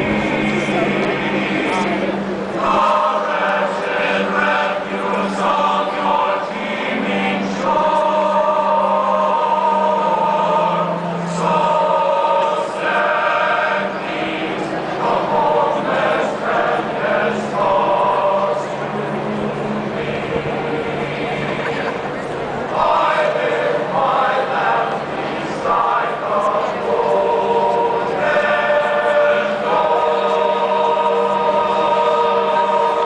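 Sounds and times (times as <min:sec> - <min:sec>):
men's choir singing in harmony: 0:00.0 - 0:33.0.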